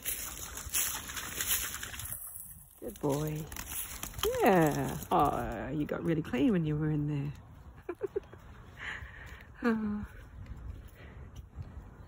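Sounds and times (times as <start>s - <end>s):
dog splashing through water: 0.0s - 4.5s
rustling of reeds and brush: 0.0s - 6.3s.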